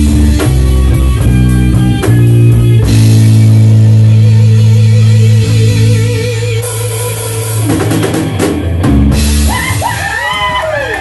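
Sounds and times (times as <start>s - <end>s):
electric guitar and bass ringing: 0.0s - 11.0s
rock band holding sustained chord: 0.0s - 11.0s.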